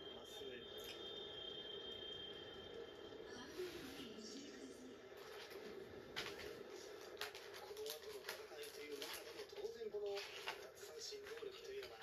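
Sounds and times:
thin steady high tone: 0:00.0 - 0:05.1.

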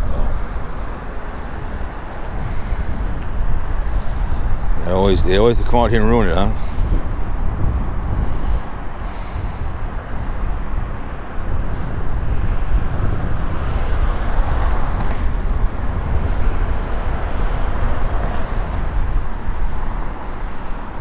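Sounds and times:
highway traffic passing: 0:00.0 - 0:21.0.

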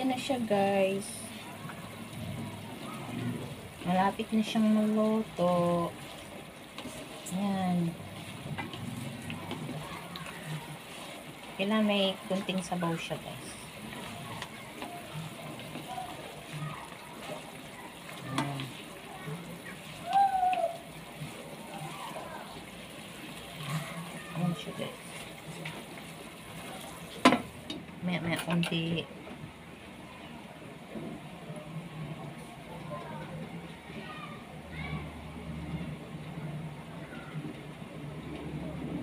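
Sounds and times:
meat sizzling in a pot: 0:00.0 - 0:27.8
plastic spoon stirring: 0:04.2 - 0:18.9.

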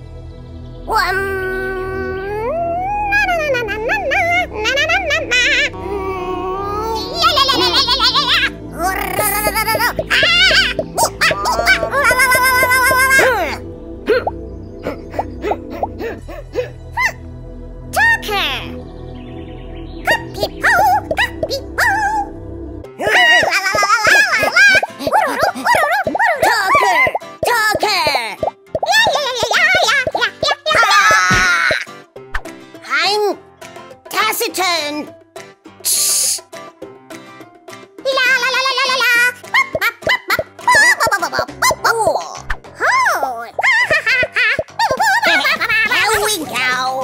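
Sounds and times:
background music tune: 0:00.0 - 0:47.0
high gliding cartoon voice calls: 0:00.9 - 0:16.1, 0:20.0 - 0:22.4.

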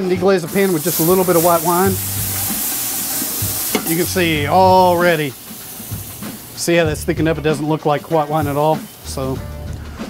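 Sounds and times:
wine sizzling in hot pot: 0:00.0 - 0:10.0.

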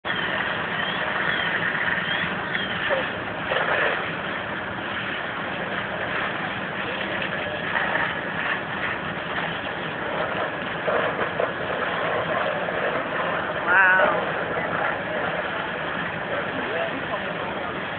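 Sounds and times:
fire engine hum: 0:00.0 - 0:17.9
wash of noise: 0:00.1 - 0:17.9
faint voices: 0:02.6 - 0:04.0, 0:05.4 - 0:08.9, 0:09.7 - 0:17.9.

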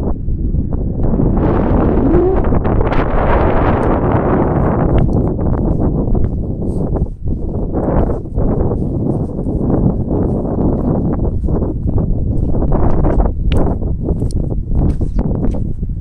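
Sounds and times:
wind buffeting microphone: 0:00.0 - 0:16.0
footsteps on stones and grass: 0:03.5 - 0:16.0.

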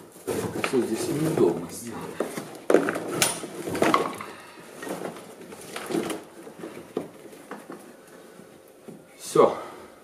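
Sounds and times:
floor mat rustling and scraping: 0:00.0 - 0:04.0.

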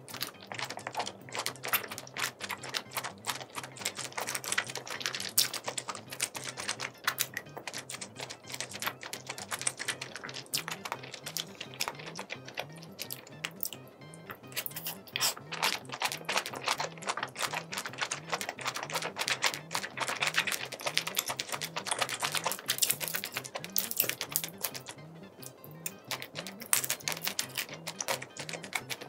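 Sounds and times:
quiet background music with beat: 0:00.0 - 0:29.0
wet chewing smacks: 0:00.1 - 0:29.0.

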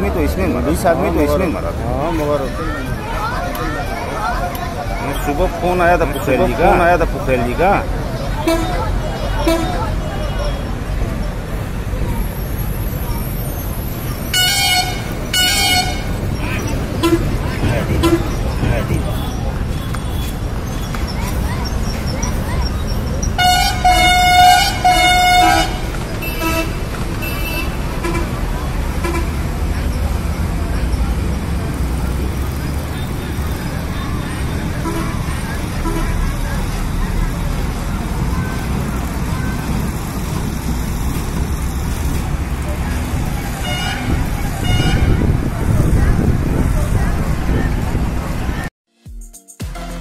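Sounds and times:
road and crowd noise: 0:00.0 - 0:48.8, 0:49.6 - 0:50.0
vehicle horn honking: 0:08.4 - 0:10.7, 0:14.3 - 0:16.2, 0:16.9 - 0:18.5, 0:23.4 - 0:28.4, 0:43.6 - 0:45.3.

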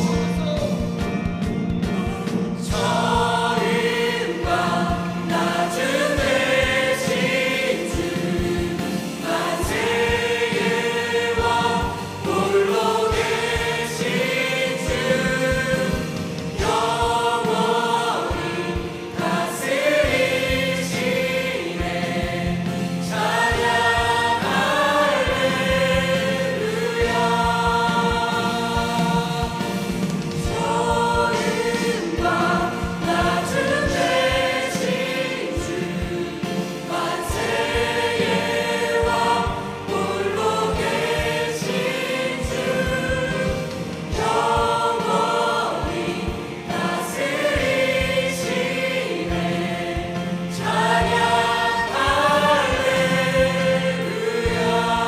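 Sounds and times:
mixed choir singing worship song: 0:00.0 - 0:55.0.

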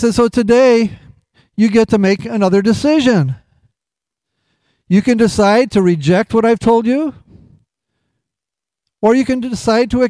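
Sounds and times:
man speaking: 0:00.0 - 0:03.5, 0:04.9 - 0:07.3, 0:09.0 - 0:10.0.

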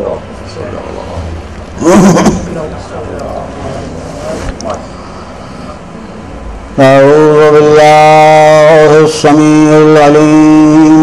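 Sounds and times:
low background noise: 0:00.0 - 0:11.0
man chanting: 0:06.7 - 0:11.0.

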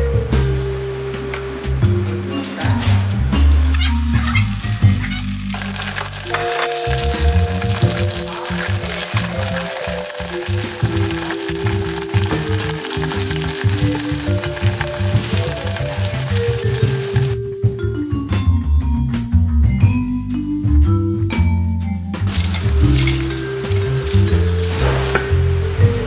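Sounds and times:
rice paper sizzling in hot oil: 0:00.5 - 0:17.4, 0:22.3 - 0:25.7.

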